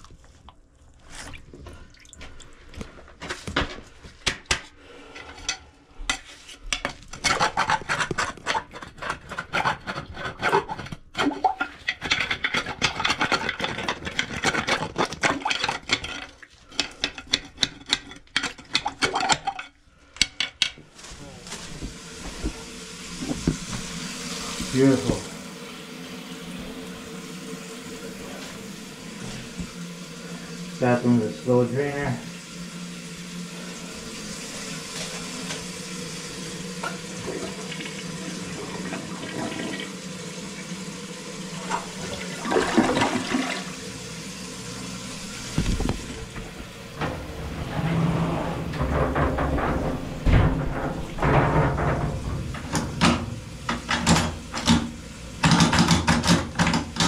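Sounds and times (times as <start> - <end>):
water running from faucet: 21.3 - 47.6, 48.7 - 57.0.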